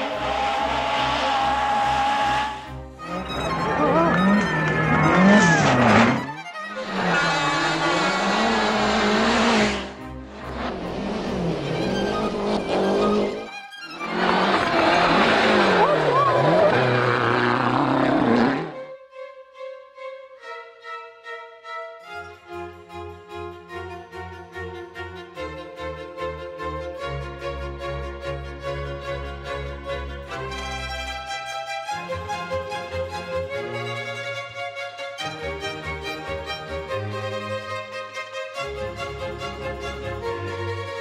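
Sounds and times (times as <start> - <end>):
racing engine revving: 0.0 - 18.8
violin-led music: 0.0 - 41.0.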